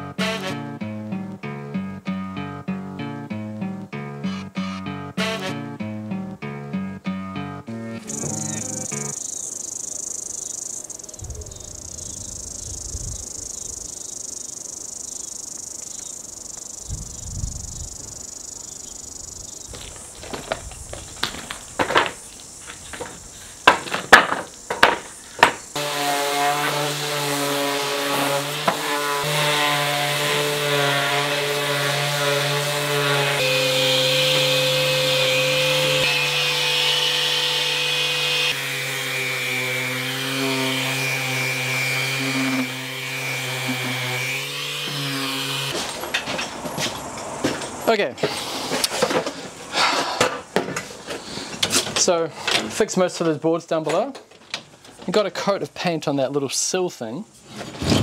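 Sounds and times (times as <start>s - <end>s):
timber debris knocking and clattering: 19.7s - 25.7s
orbital sander running: 25.0s - 45.8s.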